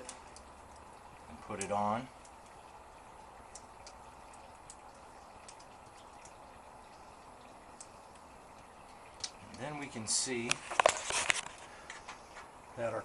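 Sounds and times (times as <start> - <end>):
background hiss: 4.0 - 13.0.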